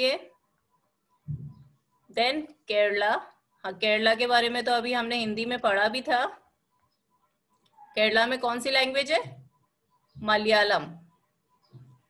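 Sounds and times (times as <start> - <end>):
woman speaking: 0.0 - 0.3, 2.1 - 6.4, 8.0 - 9.4, 10.2 - 11.1
brief low muffled thud: 1.3 - 1.7.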